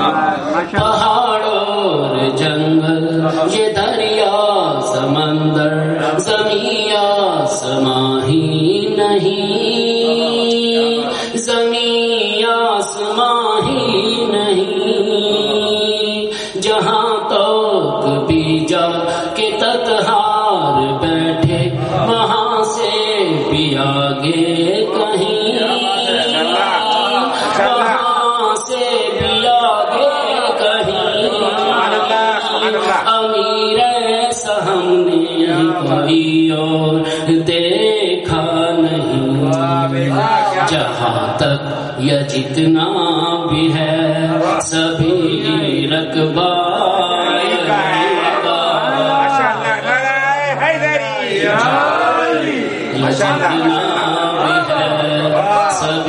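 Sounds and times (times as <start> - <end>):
man chanting melodically: 0.0 - 51.8, 52.6 - 56.0.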